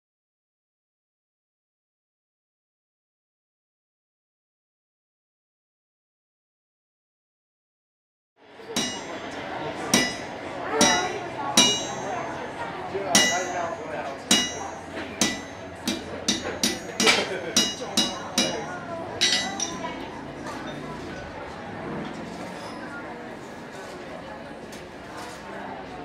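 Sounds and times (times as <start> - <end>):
hammer striking an anvil: 8.7 - 12.4, 13.1 - 19.9.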